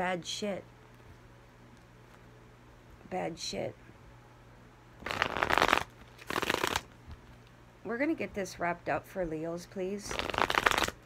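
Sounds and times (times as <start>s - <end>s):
cards shuffled by hand: 5.0s - 7.2s, 10.1s - 11.0s.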